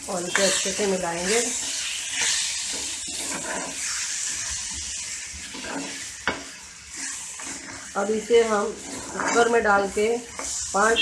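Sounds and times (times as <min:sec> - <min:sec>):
beans sizzling in a frying pan: 0:00.0 - 0:11.0
spatula stirring: 0:00.0 - 0:11.0.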